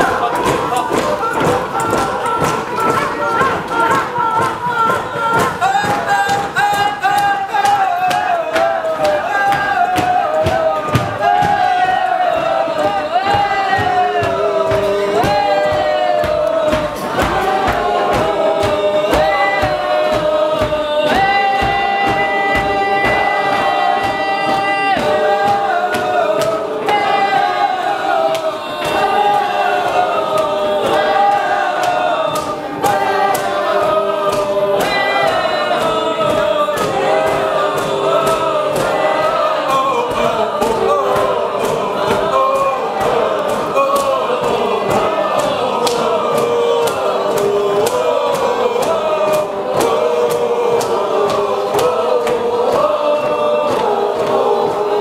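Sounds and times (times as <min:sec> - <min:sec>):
audience singing without words: 0:00.0 - 0:55.0.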